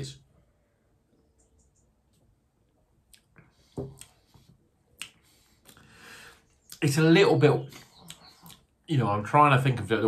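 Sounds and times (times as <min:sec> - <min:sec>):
lip smack: 0:05.0 - 0:05.8
man breathing in: 0:05.3 - 0:06.5.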